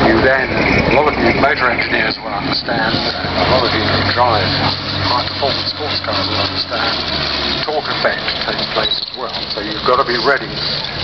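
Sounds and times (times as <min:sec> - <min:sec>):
commentator over loudspeaker: 0:00.0 - 0:10.8
low steady drone: 0:00.0 - 0:11.0.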